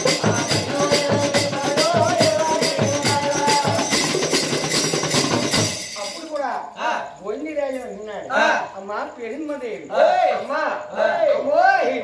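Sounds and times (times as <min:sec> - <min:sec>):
folk percussion music: 0:00.0 - 0:06.8.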